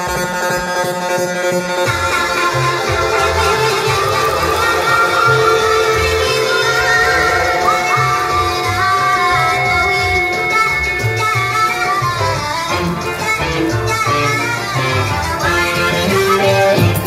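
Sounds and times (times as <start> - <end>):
band playing live: 1.9 - 17.0.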